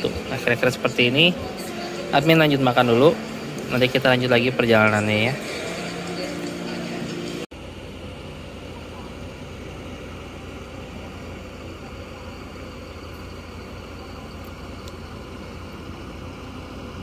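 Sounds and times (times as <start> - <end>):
bus engine idling: 0.0 - 17.0
steady hum: 0.0 - 17.0.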